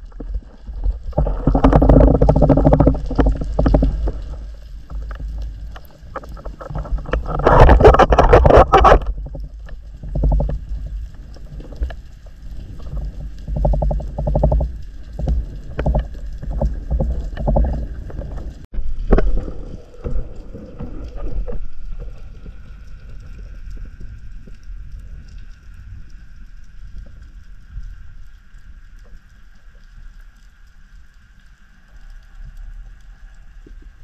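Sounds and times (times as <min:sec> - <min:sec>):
rush of water and air: 0:00.0 - 0:26.2.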